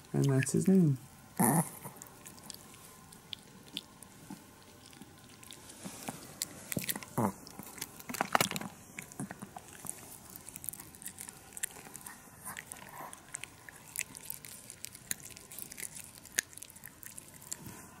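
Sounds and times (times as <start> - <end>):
dog chewing: 0.0 - 18.0.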